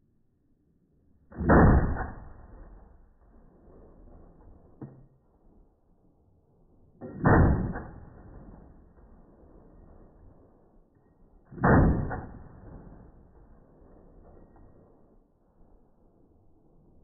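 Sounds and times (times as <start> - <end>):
gunshots with echo: 1.3 - 4.7, 7.0 - 10.6, 11.5 - 15.0.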